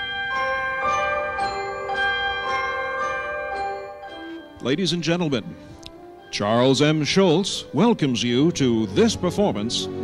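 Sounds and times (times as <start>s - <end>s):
chime melody: 0.0s - 10.0s.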